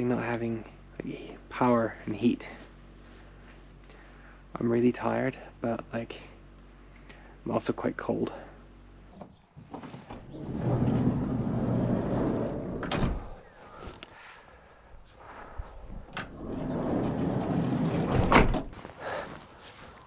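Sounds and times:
sliding van door rolling on track: 10.1s - 13.4s, 16.0s - 18.7s
van door slamming shut: 18.0s - 18.8s.

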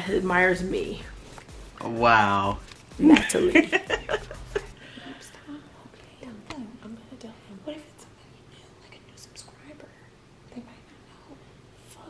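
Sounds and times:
faint whispering: 5.1s - 12.0s.

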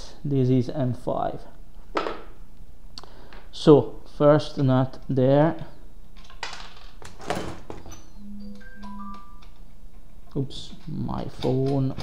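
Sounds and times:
bell-like notification chimes: 8.0s - 9.4s.

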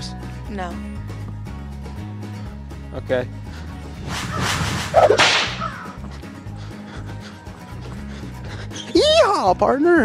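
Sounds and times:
rushing swish: 3.9s - 5.9s
sharp whip crack: 4.0s - 6.0s.

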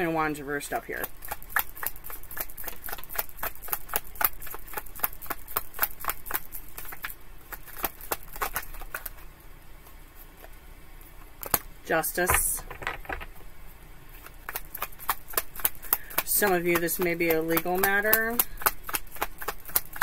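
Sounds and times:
cards being shuffled: 1.0s - 10.6s, 12.3s - 13.4s, 14.2s - 20.0s.

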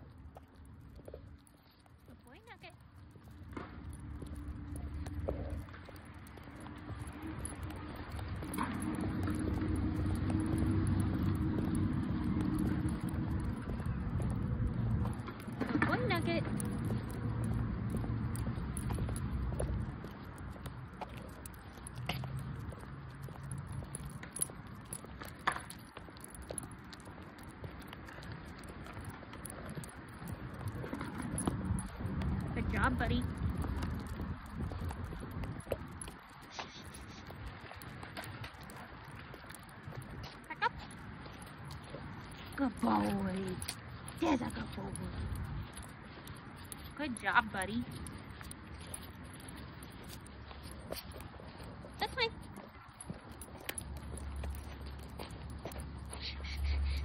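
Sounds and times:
footsteps on concrete: 0.0s - 57.0s
wind rumble on microphone: 2.9s - 57.0s
dog collar tag jingling: 39.1s - 56.4s.

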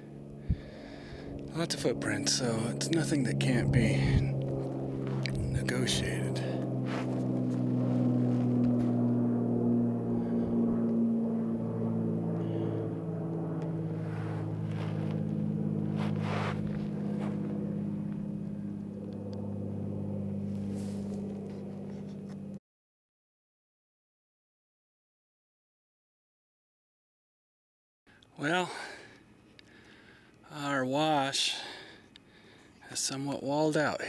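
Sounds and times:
droning engine hum: 0.0s - 22.6s, 28.2s - 34.0s
brief scrape: 16.0s - 17.4s.

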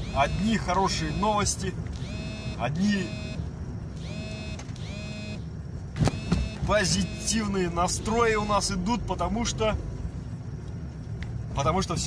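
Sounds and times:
high electronic tone: 0.0s - 3.4s, 4.0s - 8.7s
car engine low rumble: 0.0s - 12.0s.

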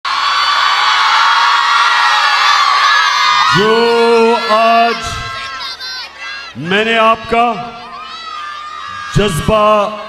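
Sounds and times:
crowd cheering and shouting: 0.0s - 10.0s
man speaking into a microphone: 3.4s - 5.4s, 6.6s - 7.9s, 9.1s - 10.0s.

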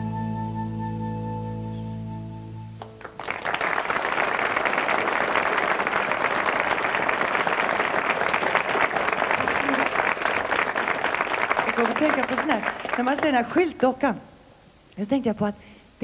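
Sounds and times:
audience applauding: 2.8s - 13.6s.

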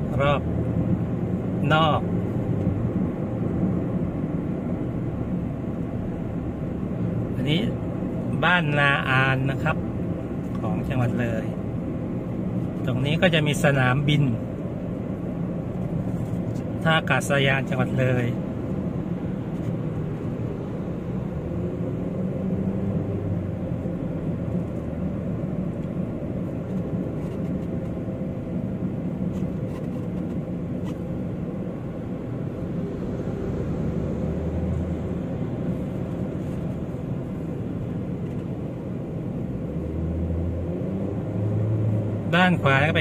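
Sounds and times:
car engine and tyre rumble: 0.0s - 43.0s.

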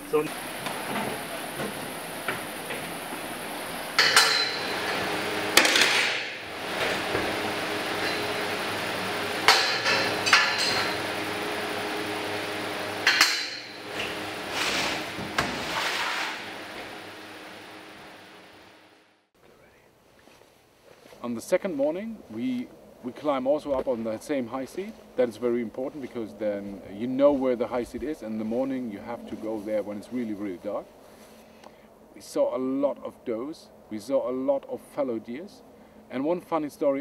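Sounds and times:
refrigeration unit hum: 0.0s - 20.4s
metal hooks clanking on rail: 4.0s - 7.0s, 8.0s - 8.4s, 9.4s - 11.0s, 13.0s - 14.2s.

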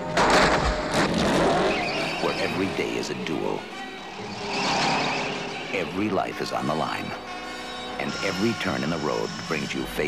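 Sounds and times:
tyre squealing on asphalt: 1.0s - 10.0s
motorcycle engine revving: 3.6s - 5.8s.

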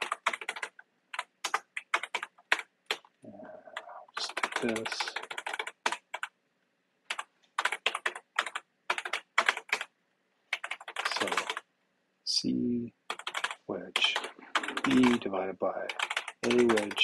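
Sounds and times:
typing on computer keyboard: 0.0s - 3.1s, 3.7s - 6.3s, 7.1s - 9.9s, 10.5s - 11.6s, 13.1s - 15.3s, 15.9s - 17.0s.

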